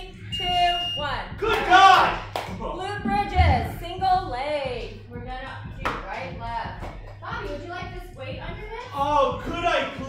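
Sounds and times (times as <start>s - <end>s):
steady low hum: 3.0s - 5.3s.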